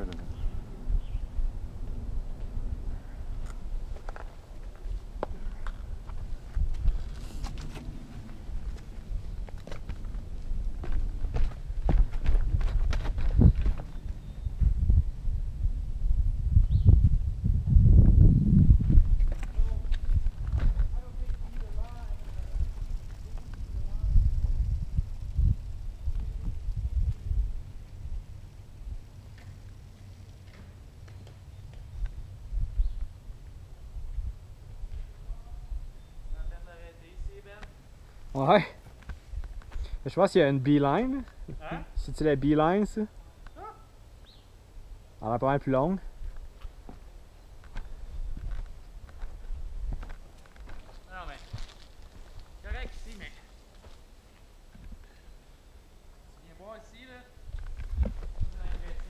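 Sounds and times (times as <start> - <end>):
wind rumble on microphone: 0.0 - 30.2, 31.5 - 37.5, 47.6 - 53.1, 57.4 - 59.0
bike knocks and rattles over rocks: 10.8 - 14.0.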